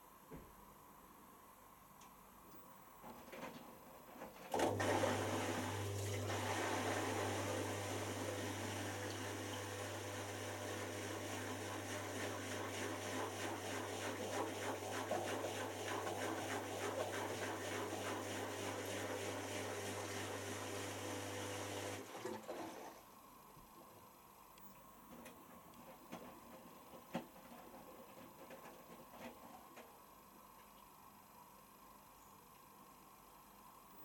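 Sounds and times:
wet laundry sloshing and tumbling: 0:04.5 - 0:23.0
washing machine motor hum: 0:04.5 - 0:30.4.

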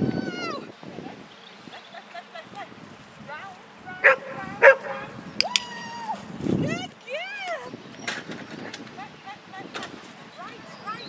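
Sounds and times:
dog barking: 0:04.0 - 0:05.2.

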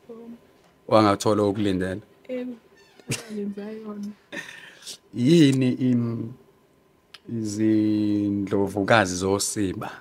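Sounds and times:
laughter: 0:03.1 - 0:03.4.

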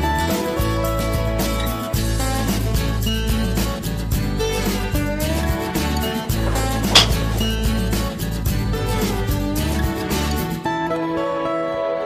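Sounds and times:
guitar music: 0:00.7 - 0:10.6
golf club striking ball: 0:06.4 - 0:07.8.

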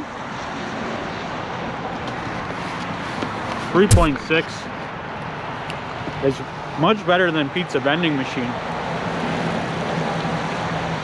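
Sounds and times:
passing road traffic: 0:00.0 - 0:11.0.

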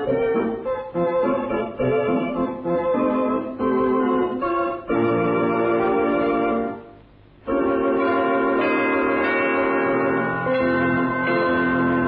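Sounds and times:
organ chord: 0:00.0 - 0:12.0.

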